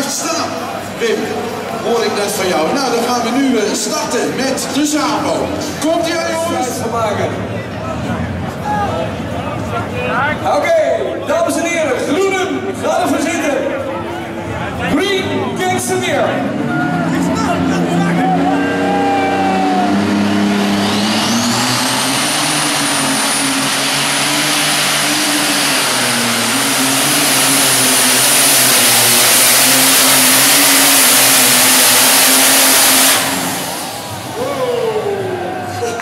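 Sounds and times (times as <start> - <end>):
high turbo whine: 0.0 - 36.0
tractor diesel engine revving: 14.2 - 36.0.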